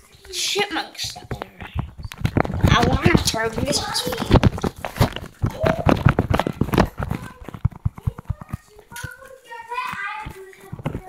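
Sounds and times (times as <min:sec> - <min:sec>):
footsteps on wooden floor: 0:01.1 - 0:09.3
phone rubbing and knocking: 0:01.3 - 0:08.6.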